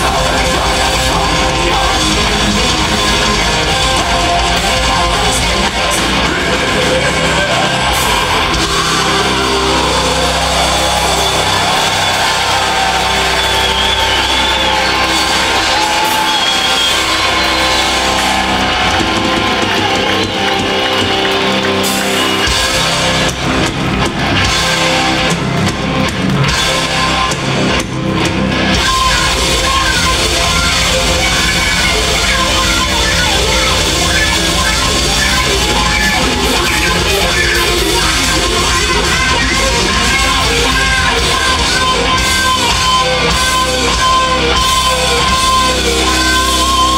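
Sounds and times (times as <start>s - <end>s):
live metal band playing: 0.0s - 46.9s.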